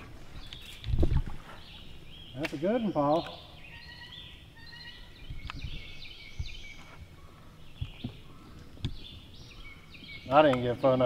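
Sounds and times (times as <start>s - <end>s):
songbirds chirping and trilling: 0.0s - 11.0s.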